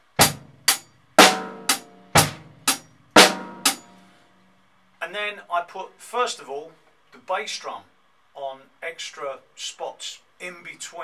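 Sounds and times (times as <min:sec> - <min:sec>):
drum kit playing steady pattern: 0:00.0 - 0:04.1.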